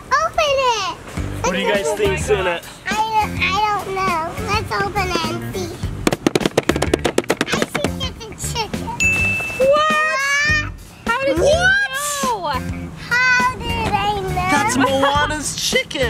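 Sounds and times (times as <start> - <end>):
high excited voices: 0.0 - 6.0, 7.4 - 16.0
background music: 1.0 - 16.0
ding: 9.0 - 9.9.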